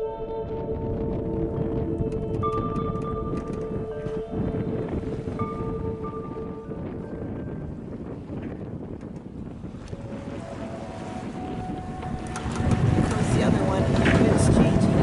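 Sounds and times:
choppy water: 0:00.0 - 0:15.0
wind rumbling on microphone: 0:00.0 - 0:15.0.

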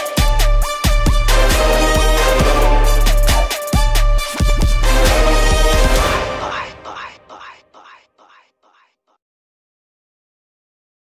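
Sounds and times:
repeating echoed vocal sound: 0:05.9 - 0:09.0.

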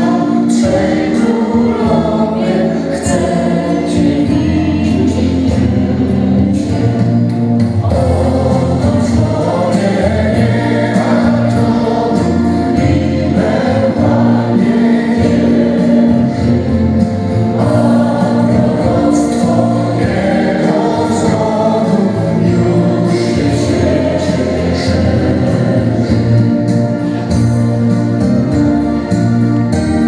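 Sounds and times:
choir singing a carol: 0:00.0 - 0:30.0
steady bass line: 0:00.0 - 0:30.0.

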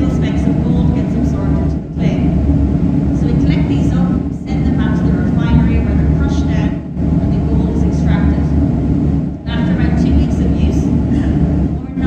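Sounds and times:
woman speaking through microphone: 0:00.0 - 0:02.4, 0:03.1 - 0:08.6, 0:09.4 - 0:12.0
steady low hum: 0:00.0 - 0:12.0.

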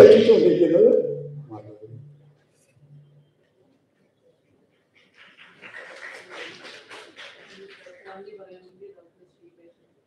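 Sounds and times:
audience applauding: 0:05.1 - 0:08.2.

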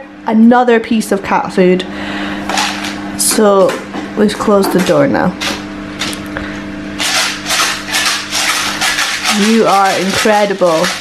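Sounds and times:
steady low hum: 0:00.0 - 0:11.0
plastic jar rattling: 0:07.0 - 0:11.0.

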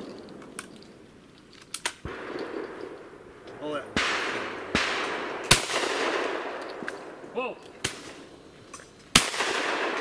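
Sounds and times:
shells loading clicks: 0:00.0 - 0:03.6, 0:06.6 - 0:08.0.

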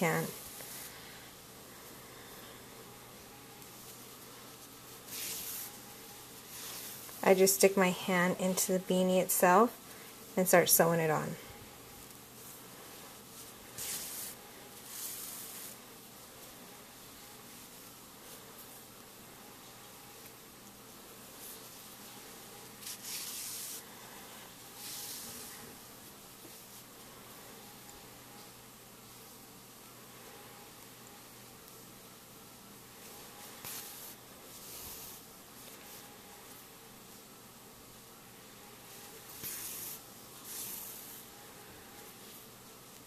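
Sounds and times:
faint steady hiss: 0:00.0 - 0:43.0
yarn rasping through stitches: 0:22.8 - 0:23.8.

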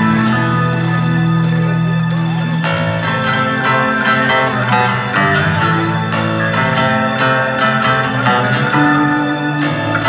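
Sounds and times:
electric guitars melodic line: 0:00.0 - 0:10.0.

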